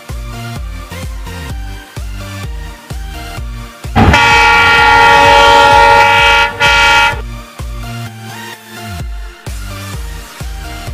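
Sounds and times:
train horn blasts: 4.0s - 7.3s.

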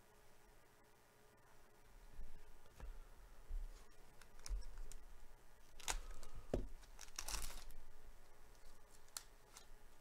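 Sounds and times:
foil wrapper tearing and crinkling: 5.7s - 7.8s, 8.5s - 9.7s.

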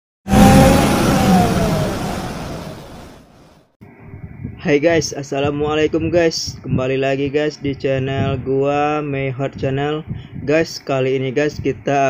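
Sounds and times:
car passing at speed: 0.3s - 3.5s.

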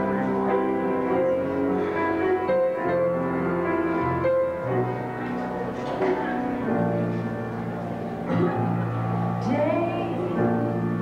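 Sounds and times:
keyboard playing piano-like chords: 0.0s - 11.0s.

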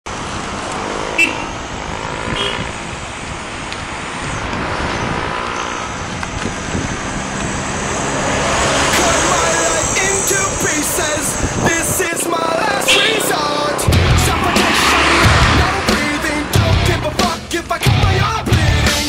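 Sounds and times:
road and traffic noise: 0.0s - 19.0s.

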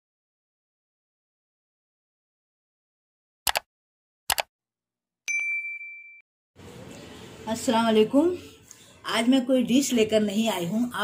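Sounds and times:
bright bell ding: 5.3s - 6.2s.

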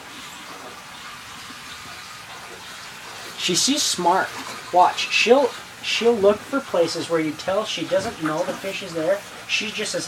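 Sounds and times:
aquarium water rushing: 0.0s - 10.0s.

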